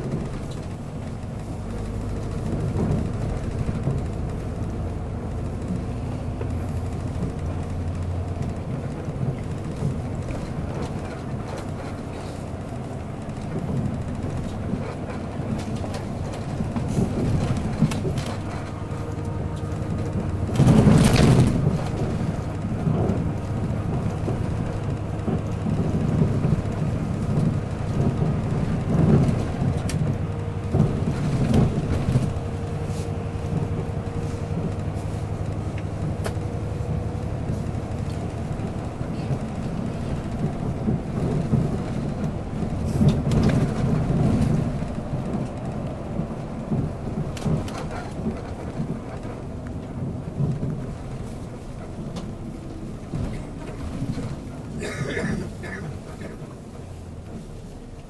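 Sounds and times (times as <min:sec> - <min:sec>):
knocks and rattles: 0:00.0 - 0:34.8, 0:35.4 - 0:56.7
bus engine and road rumble: 0:00.0 - 0:58.0.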